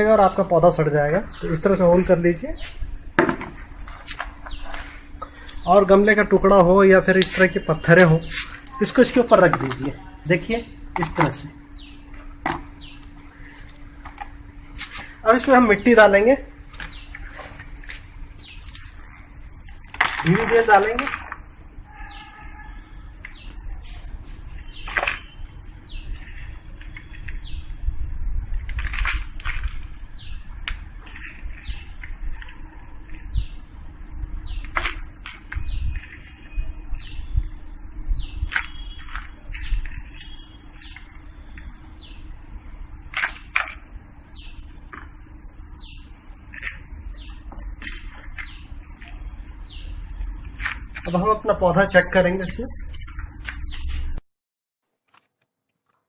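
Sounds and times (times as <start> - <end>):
small birds chirping: 0.0 - 3.1, 3.8 - 54.2
hands scooping potting soil: 3.4 - 5.9, 12.6 - 21.5, 43.0 - 54.2.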